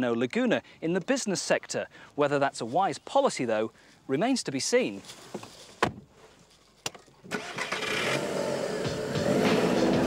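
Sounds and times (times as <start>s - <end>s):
car engine starting and revving: 7.3s - 10.0s
background music: 7.4s - 10.0s.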